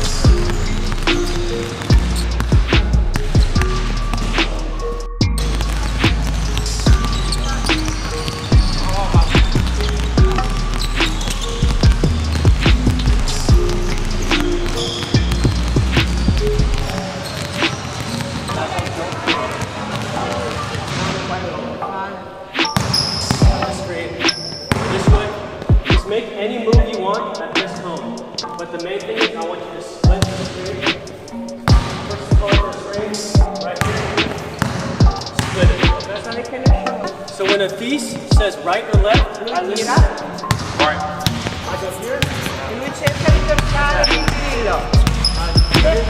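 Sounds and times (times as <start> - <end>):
basketballs bouncing on hardwood floor: 0.0 - 4.4, 5.2 - 21.2, 22.8 - 23.8, 24.4 - 26.0, 30.1 - 30.5, 31.6 - 32.7, 33.4 - 36.0, 39.9 - 46.0
background music with bass line: 0.0 - 17.1, 30.0 - 41.7, 43.1 - 46.0.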